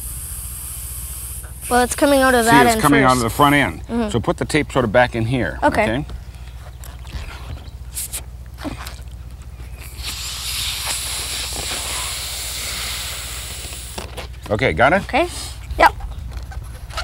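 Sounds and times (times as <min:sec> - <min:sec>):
man blowing up balloon: 0:00.0 - 0:03.8, 0:07.9 - 0:09.0, 0:09.8 - 0:14.1
low constant hum: 0:00.0 - 0:17.0.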